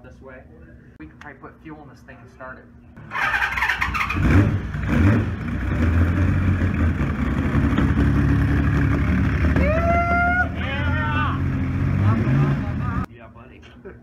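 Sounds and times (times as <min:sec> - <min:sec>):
motorcycle engine running: 0:03.0 - 0:13.1.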